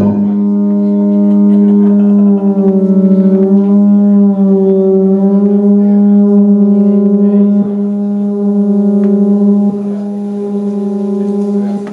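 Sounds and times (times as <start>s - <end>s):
low synthesizer drone: 0.0s - 11.9s.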